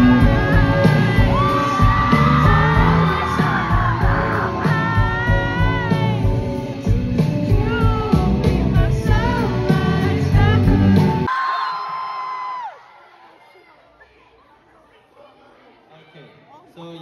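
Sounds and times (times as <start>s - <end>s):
drum kit: 0.0s - 11.3s
electric guitars: 0.0s - 11.3s.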